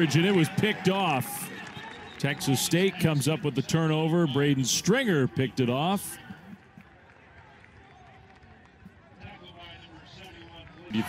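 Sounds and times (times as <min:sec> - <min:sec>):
low crowd murmur: 0:00.0 - 0:11.0.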